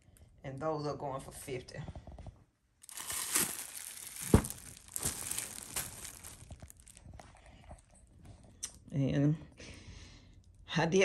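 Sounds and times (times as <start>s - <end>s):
sharp crackle of cellophane: 2.8s - 7.2s
cellophane wrap crinkling: 2.8s - 7.4s.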